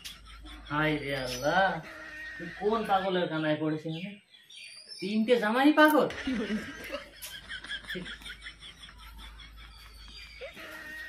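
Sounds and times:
chickens calling faintly: 0.0 - 4.1, 6.0 - 11.0
long steady chicken call: 1.8 - 3.0, 8.2 - 11.0.

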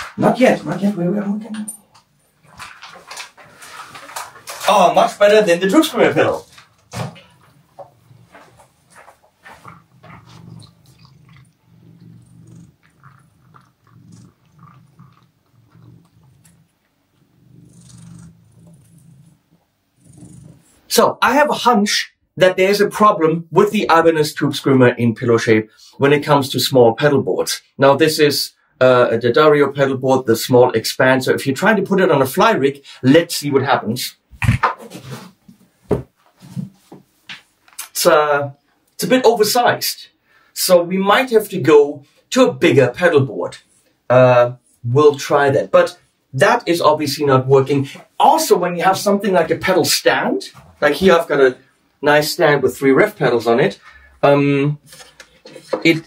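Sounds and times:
cat purring: 5.1 - 20.9.

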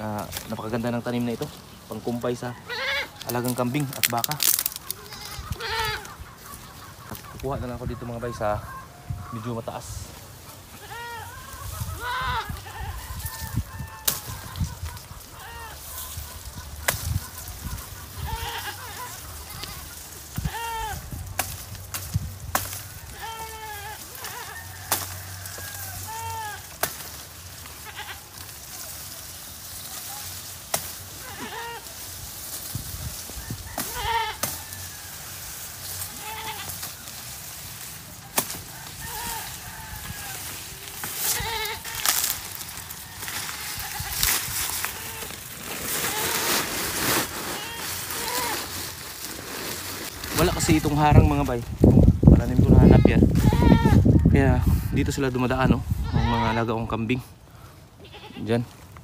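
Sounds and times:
goats bleating: 2.6 - 4.0, 4.8 - 7.2, 10.6 - 21.2, 23.0 - 32.2, 33.8 - 34.8, 35.8 - 46.5, 47.4 - 48.8, 52.6 - 54.3, 55.9 - 56.9, 57.9 - 58.8.

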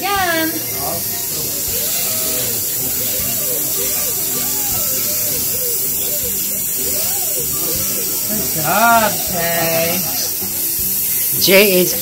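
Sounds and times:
dental handpiece whirring: 0.0 - 12.0
suction hiss: 0.0 - 12.0.

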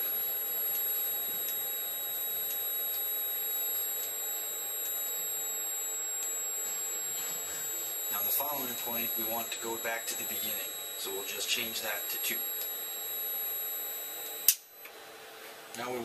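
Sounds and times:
high-pitched whine: 0.0 - 14.9
electrical hum: 0.0 - 16.0.

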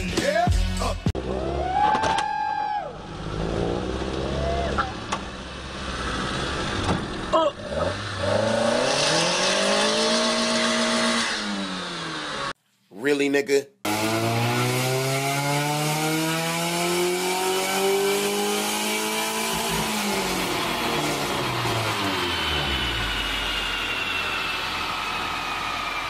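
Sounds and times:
car engine revving: 2.9 - 12.6, 13.9 - 26.0.

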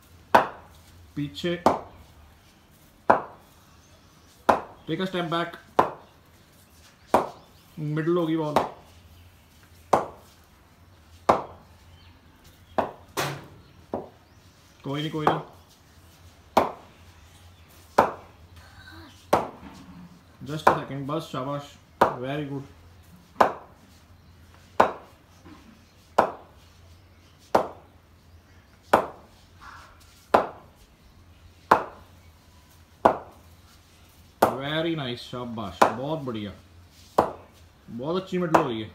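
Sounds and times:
cricket bat striking ball: 0.3 - 0.6, 3.1 - 3.4, 4.5 - 4.8, 5.8 - 6.0, 7.1 - 7.4, 8.5 - 8.8, 9.9 - 10.2, 11.3 - 11.6, 12.8 - 14.1, 16.6 - 16.9, 17.9 - 18.3, 19.3 - 19.6, 23.4 - 23.7, 24.8 - 25.1, 26.2 - 26.5, 27.6 - 27.8, 28.9 - 29.2, 30.3 - 30.6, 31.7 - 32.0, 33.0 - 33.4, 37.2 - 37.4.

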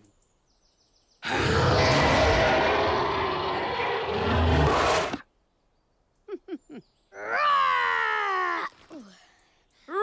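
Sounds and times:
cartoon dragon roaring: 1.2 - 5.2.

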